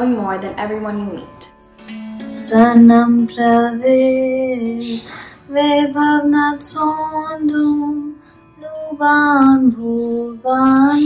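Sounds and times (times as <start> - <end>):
girl singing long held notes: 2.3 - 11.0.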